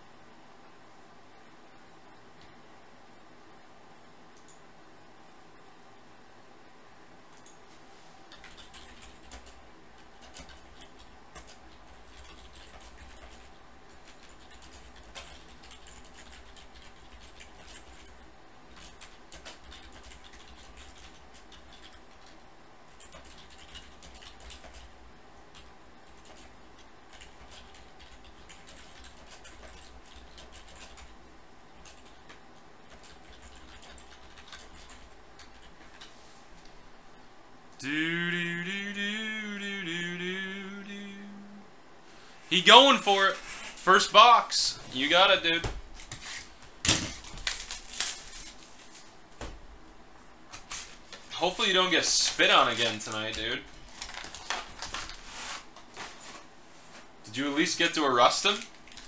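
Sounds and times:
low steady hum: 0.0 - 59.0
typing on a computer keyboard: 8.3 - 24.9, 25.5 - 31.2, 31.8 - 36.1.

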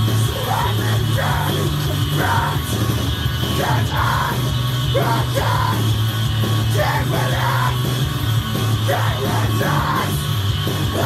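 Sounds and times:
heavy rock band music: 0.0 - 11.0
man shouting vocals: 0.2 - 2.6, 5.0 - 5.9, 6.7 - 7.8, 8.9 - 10.2.

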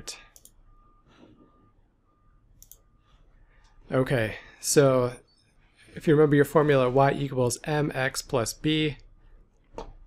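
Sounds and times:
soft mouse click: 2.6 - 2.8.

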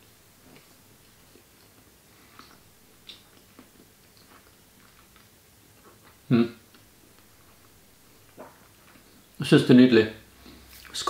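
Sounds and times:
faint chewing of cheese: 0.1 - 9.4, 10.3 - 11.0
small mouth clicks: 2.4 - 4.4.

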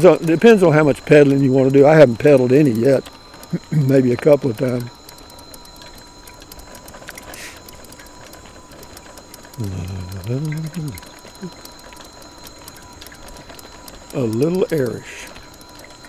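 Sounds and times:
electric motor whine: 0.0 - 16.0
light ticking: 0.0 - 16.0
man's voice: 9.6 - 11.0.

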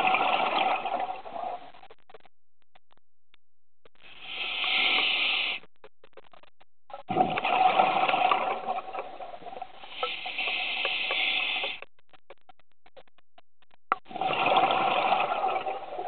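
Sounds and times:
exhaled bubbles rushing: 0.0 - 1.6, 7.1 - 9.7, 14.0 - 16.0
diver inhaling through regulator: 4.0 - 5.6, 9.8 - 11.8.

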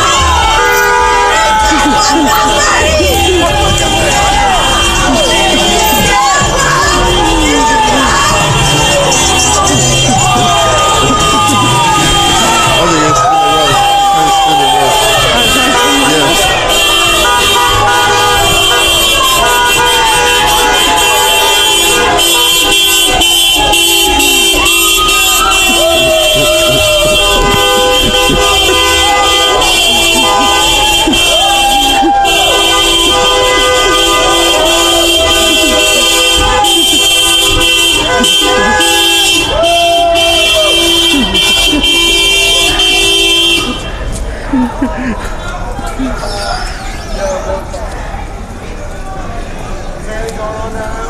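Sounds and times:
many car horns honking: 0.0 - 47.8
people screaming and whooping: 0.0 - 51.0.

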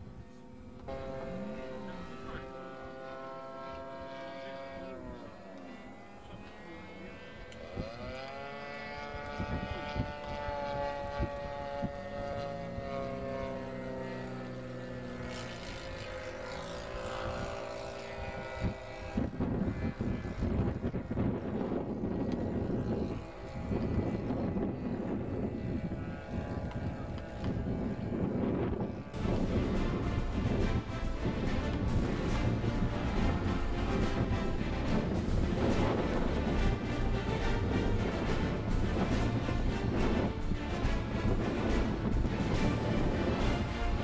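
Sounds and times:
model plane engine running: 0.0 - 44.0
rough uneven rumbling: 28.5 - 44.0.

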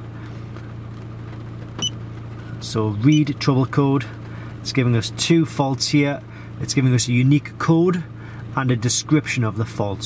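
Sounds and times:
low hum in car cabin: 0.0 - 10.0.

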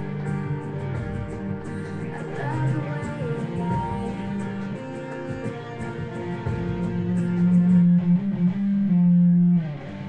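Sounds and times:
guitar playing chords: 0.0 - 10.0.

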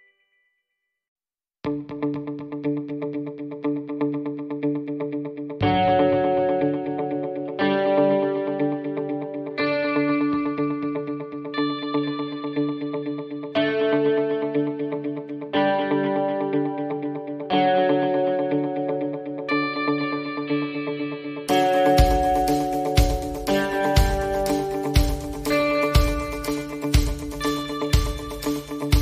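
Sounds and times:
picked guitar through effects: 1.6 - 29.0.

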